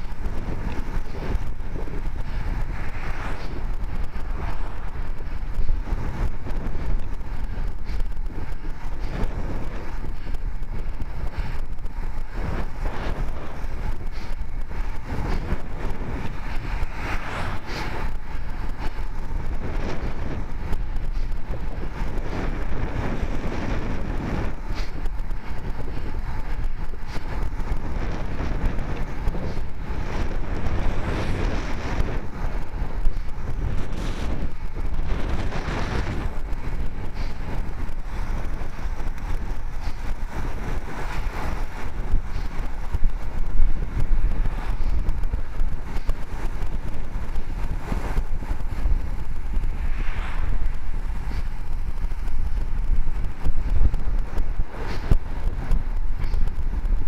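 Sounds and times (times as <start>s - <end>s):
bike tyres humming on road: 0.0s - 57.0s
wind rush on microphone: 0.0s - 57.0s.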